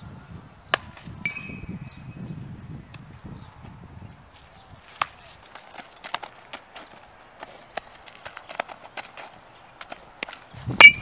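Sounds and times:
footsteps on dirt: 0:02.7 - 0:11.0.

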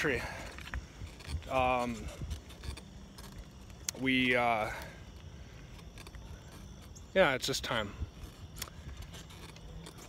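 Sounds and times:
wind rumble on microphone: 0:00.0 - 0:03.7.

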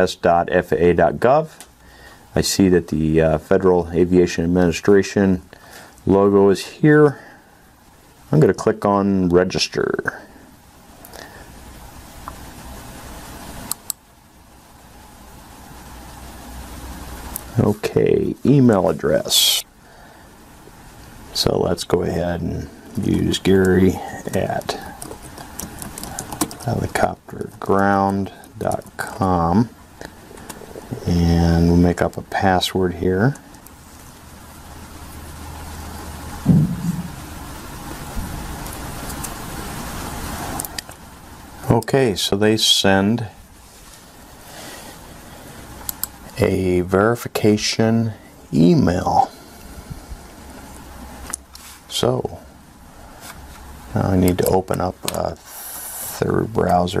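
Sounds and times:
steady background hiss: 0:00.0 - 0:57.0
steady low background hum: 0:00.0 - 0:57.0
low thump: 0:36.4 - 0:37.2.

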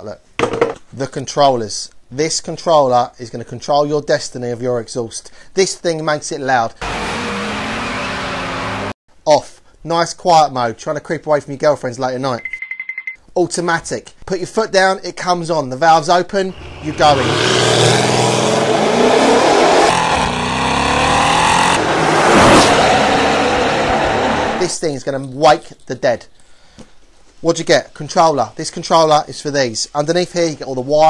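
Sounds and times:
car engine accelerating hard: 0:06.8 - 0:09.0, 0:16.5 - 0:24.7.

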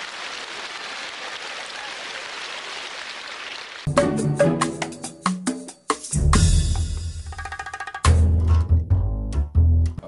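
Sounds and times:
audience applauding: 0:00.0 - 0:04.0.

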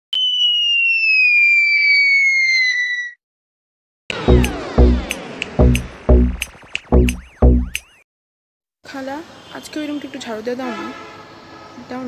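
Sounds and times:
descending whistle tone: 0:00.1 - 0:03.2.

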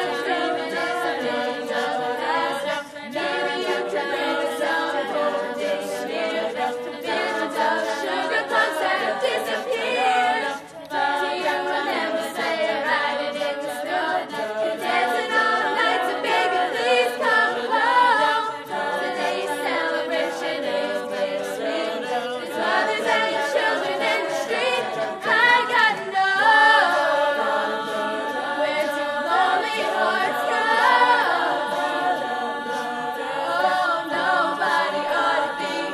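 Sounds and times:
a cappella group singing in harmony: 0:00.0 - 0:35.9.

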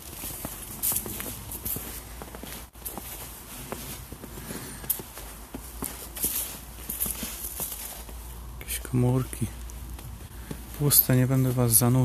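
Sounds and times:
footsteps crunching on snow: 0:00.0 - 0:12.0.

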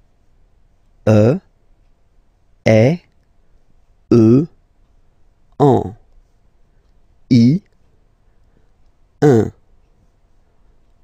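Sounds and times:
man saying a vowel: 0:01.1 - 0:01.5, 0:02.6 - 0:03.1, 0:04.1 - 0:04.6, 0:05.6 - 0:06.1, 0:07.3 - 0:07.7, 0:09.2 - 0:09.6.

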